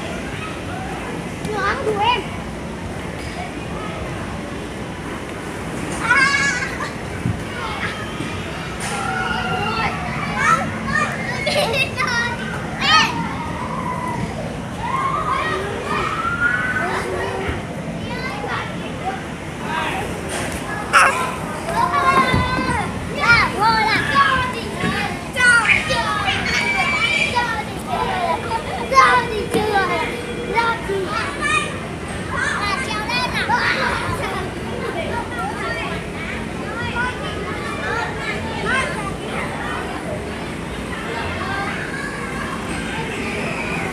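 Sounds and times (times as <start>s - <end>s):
children calling and squealing: 5.8s - 43.9s
children's excited calls: 20.8s - 22.7s.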